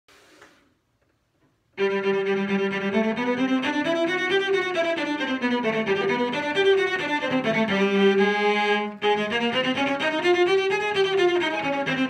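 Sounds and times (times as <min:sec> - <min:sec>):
bowed cello: 0:01.8 - 0:12.0.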